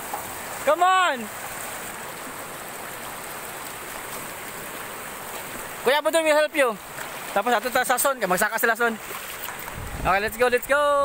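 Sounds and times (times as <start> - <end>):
river rushing over rocks: 0.0 - 11.0.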